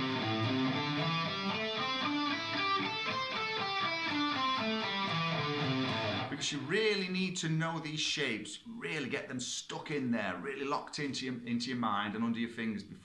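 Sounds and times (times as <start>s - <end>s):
electric guitar playing a scale: 0.0s - 6.4s.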